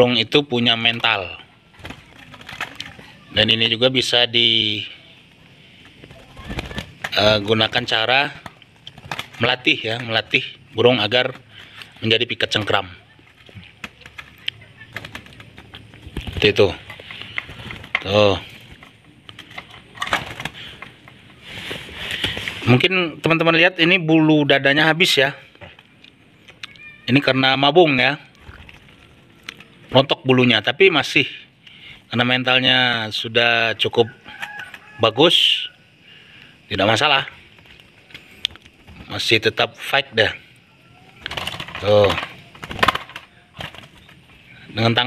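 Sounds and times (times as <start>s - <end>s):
bird wings flapping: 0.9s - 3.3s, 5.3s - 22.7s, 37.6s - 39.6s, 41.0s - 44.4s.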